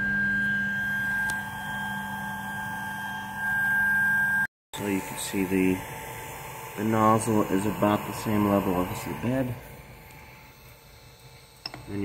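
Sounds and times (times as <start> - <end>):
cooling fans humming: 0.0 - 12.0.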